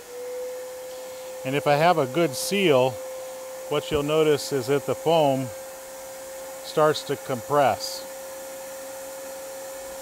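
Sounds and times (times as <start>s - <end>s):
vacuum cleaner whining: 0.0s - 10.0s.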